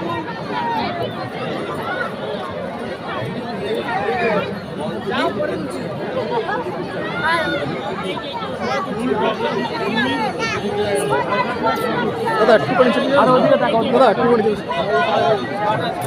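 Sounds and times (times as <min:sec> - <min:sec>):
babble of overlapping conversation: 0:00.0 - 0:16.0.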